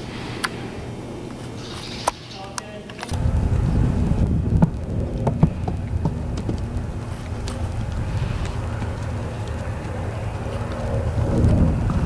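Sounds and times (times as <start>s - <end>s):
horse hooves on dirt: 1.2s - 12.0s
wind buffeting microphone: 3.1s - 12.0s.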